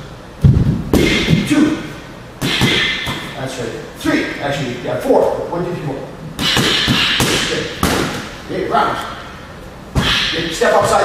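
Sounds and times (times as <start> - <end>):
boxing gloves hitting focus mitts: 6.4 - 8.3.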